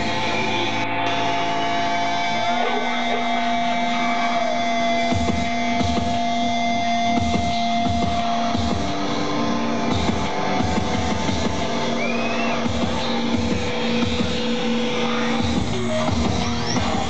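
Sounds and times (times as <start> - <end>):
band playing droning noise: 0.0 - 17.0.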